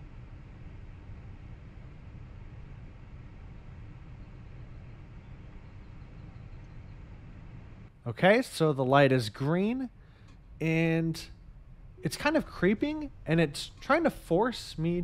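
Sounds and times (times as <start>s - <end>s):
car cabin hum and hiss: 12.0s - 15.0s.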